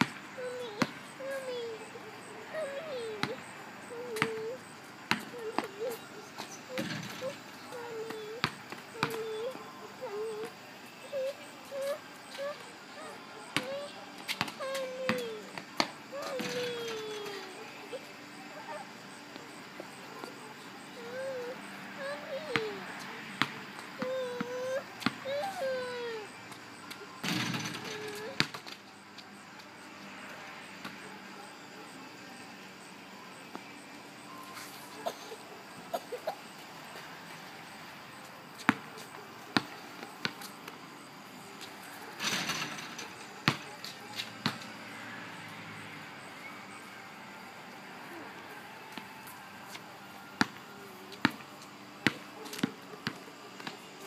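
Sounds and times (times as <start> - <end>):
basketball bouncing on concrete: 0.0 - 1.0, 2.6 - 12.6, 13.5 - 17.6, 22.2 - 25.8, 27.2 - 28.7, 38.6 - 40.8, 43.4 - 44.7, 50.4 - 50.6, 51.2 - 51.4, 52.0 - 53.9
ball hitting rim and backboard: 3.2 - 3.4, 8.0 - 9.3, 15.8 - 17.3, 27.2 - 28.6, 42.2 - 44.7.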